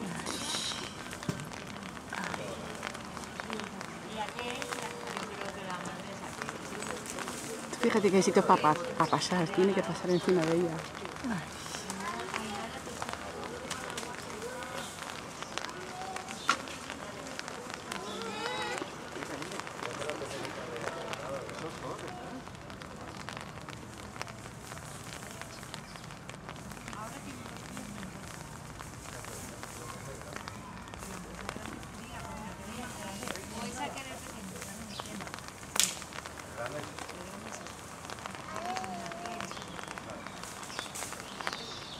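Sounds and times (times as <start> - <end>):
people chattering: 0.0 - 41.9
rain pattering: 0.0 - 41.9.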